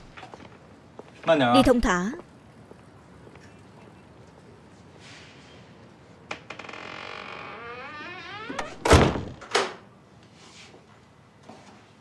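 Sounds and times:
wooden door creaking: 0:06.3 - 0:09.8
door shutting thud: 0:08.3 - 0:09.8.

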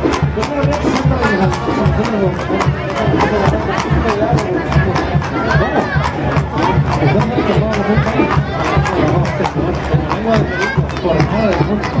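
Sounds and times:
crowd voices and shouts: 0:00.0 - 0:12.0.

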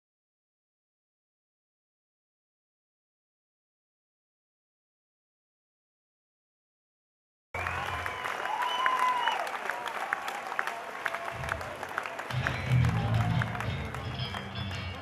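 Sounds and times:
audience clapping: 0:07.6 - 0:15.0
pulsing bass line: 0:11.4 - 0:15.0
rock band playing: 0:12.3 - 0:15.0.

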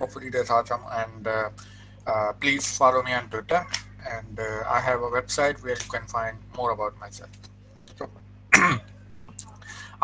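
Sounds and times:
man clearing his throat: 0:08.6 - 0:08.9.

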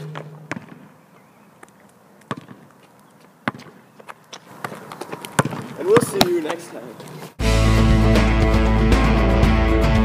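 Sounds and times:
basketball bouncing on asphalt: 0:00.0 - 0:06.7.

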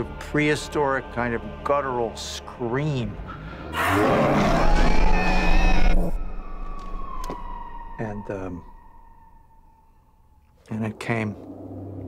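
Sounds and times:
guttural creature scream: 0:03.2 - 0:06.2.

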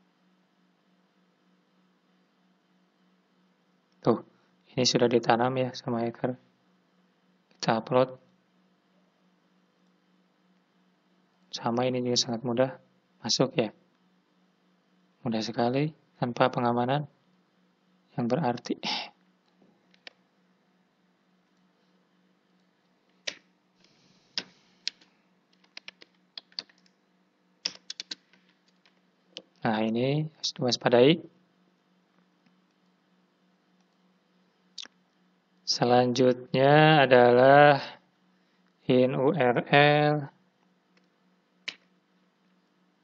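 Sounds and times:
faint steady hum: 0:00.0 - 0:43.0
computer keyboard typing: 0:24.9 - 0:26.9, 0:27.6 - 0:28.8.

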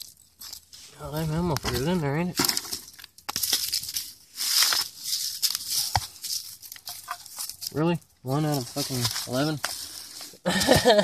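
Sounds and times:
hand rummaging through dirt and leaves: 0:00.0 - 0:11.0.

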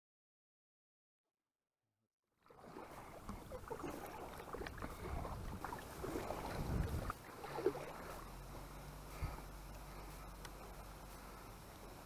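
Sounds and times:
low steady hum: 0:02.6 - 0:12.0
wind rumble on microphone: 0:04.5 - 0:07.7.

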